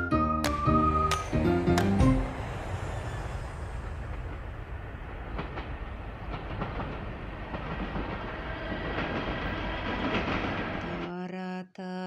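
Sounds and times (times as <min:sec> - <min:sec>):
low rumbling noise: 0:00.7 - 0:11.1.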